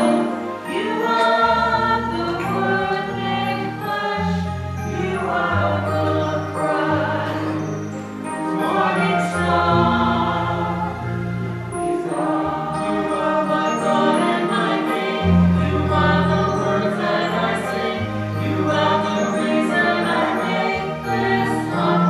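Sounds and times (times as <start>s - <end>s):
choir singing a hymn: 0.0s - 22.0s
electronic keyboard chords: 0.0s - 22.0s.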